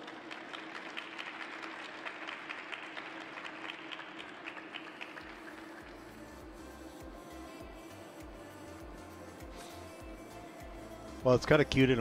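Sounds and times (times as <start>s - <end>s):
sparse applause in arena: 0.0s - 6.3s
music: 0.0s - 12.0s.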